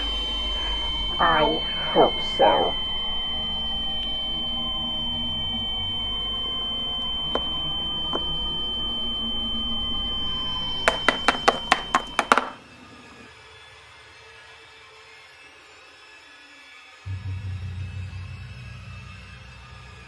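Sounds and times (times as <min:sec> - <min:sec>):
faint low hum: 0:00.0 - 0:12.2
high-pitched electronic tone: 0:00.0 - 0:13.2.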